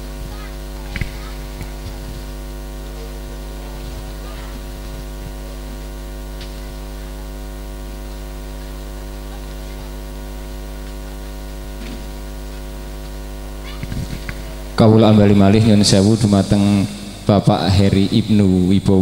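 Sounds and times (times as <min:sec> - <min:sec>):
electrical mains hum: 0:00.0 - 0:19.0
man's voice: 0:14.8 - 0:19.0.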